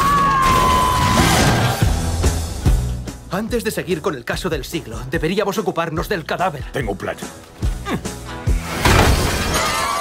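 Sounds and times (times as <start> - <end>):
background music: 0.0 - 10.0
something shattering: 8.6 - 10.0.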